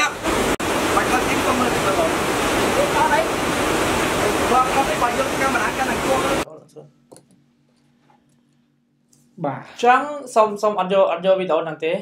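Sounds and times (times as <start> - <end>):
stream rushing over rocks: 0.0 - 6.5.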